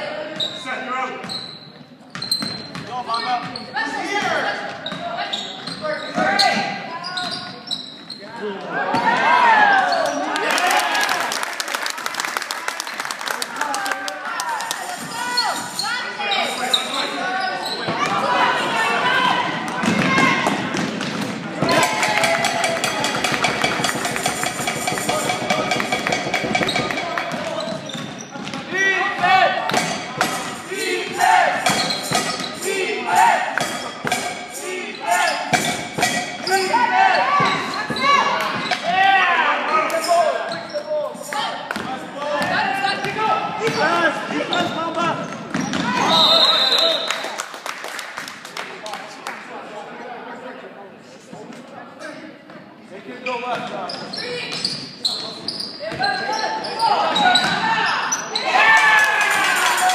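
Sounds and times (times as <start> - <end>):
many voices calling out: 30.3 - 33.7.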